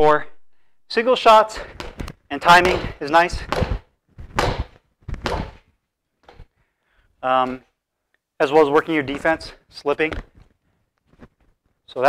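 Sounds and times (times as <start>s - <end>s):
gloved punches on reflex bag: 1.7s - 5.6s.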